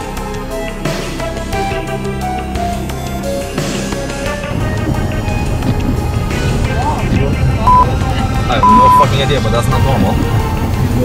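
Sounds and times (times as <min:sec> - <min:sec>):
car engine and tyres rumbling: 0:00.9 - 0:11.0
short steady beep: 0:07.7 - 0:07.9, 0:08.6 - 0:09.1.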